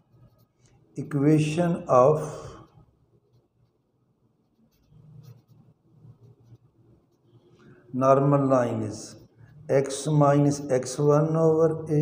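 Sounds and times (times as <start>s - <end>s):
pen scratching on paper: 0.0s - 1.6s, 2.5s - 7.4s, 8.2s - 11.2s.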